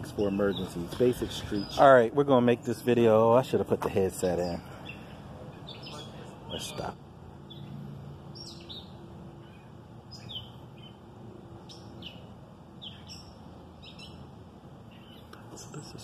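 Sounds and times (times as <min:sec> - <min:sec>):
low steady background hum: 0:00.0 - 0:16.0
small birds chirping: 0:00.0 - 0:16.0.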